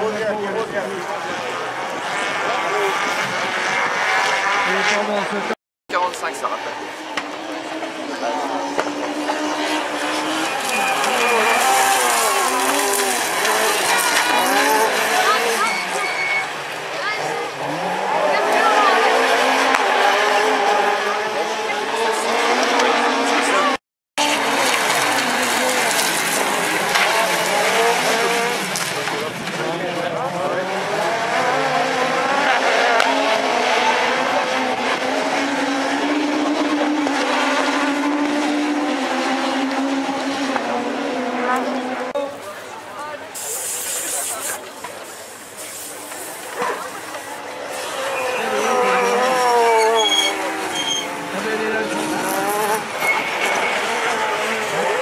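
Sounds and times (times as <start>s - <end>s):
racing car engines revving: 0.0s - 55.0s.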